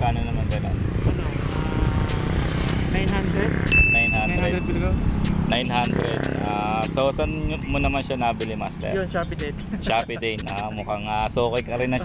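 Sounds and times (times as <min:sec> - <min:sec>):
motorcycle engine passing: 0:00.6 - 0:11.2.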